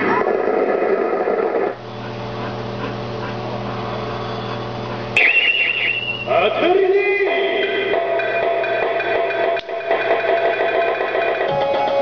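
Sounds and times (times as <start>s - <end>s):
steady low hum: 0.0s - 12.0s
warbling high chime: 5.2s - 6.3s.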